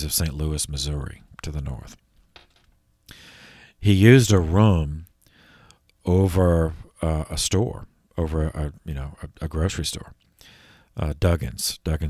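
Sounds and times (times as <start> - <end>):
man talking: 0.0 - 2.0, 3.8 - 5.1, 6.1 - 10.2, 11.0 - 12.0.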